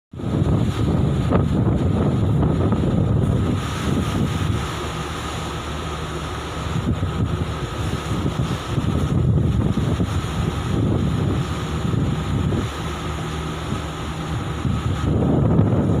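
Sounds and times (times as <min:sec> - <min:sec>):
wind buffeting microphone: 0:00.1 - 0:16.0
ship machinery hum: 0:00.2 - 0:16.0.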